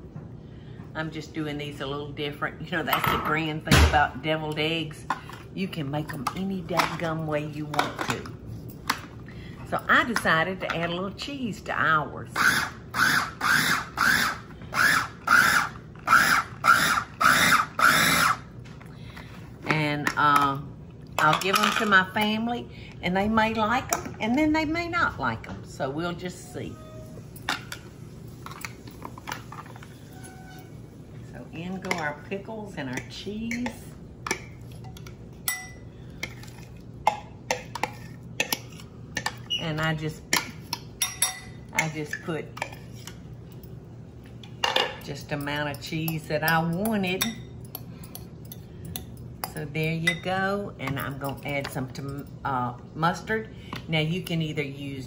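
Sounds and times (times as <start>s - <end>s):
electric food chopper pulsing: 12.4s - 18.5s
metal spoon clinking on glass bowls: 34.3s - 36.4s, 41.0s - 41.6s.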